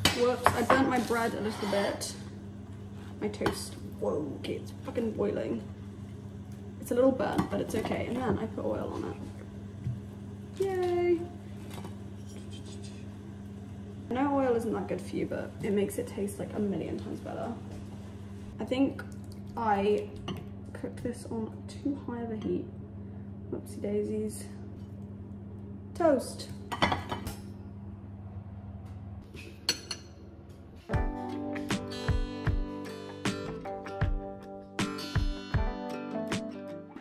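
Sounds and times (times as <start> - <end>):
steady low hum: 0.0 - 31.1
kitchenware clinking: 29.6 - 30.2
guitar music: 30.9 - 37.0.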